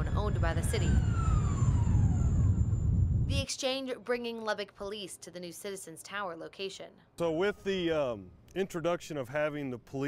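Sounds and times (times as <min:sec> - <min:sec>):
construction hoist rumbling: 0:00.0 - 0:03.4
hoist motor whine: 0:00.0 - 0:03.4.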